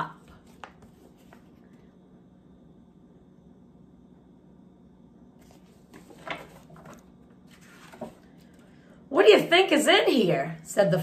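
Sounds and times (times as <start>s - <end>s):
book pages rustling: 0.2s - 1.8s, 5.4s - 8.7s.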